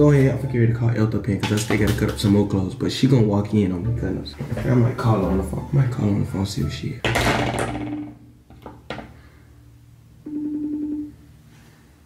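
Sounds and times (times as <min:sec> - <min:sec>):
phone ringing tone: 0:10.2 - 0:11.4.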